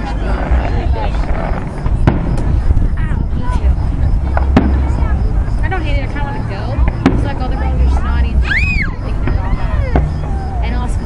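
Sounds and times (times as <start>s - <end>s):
fireworks bangs: 0.0s - 11.0s.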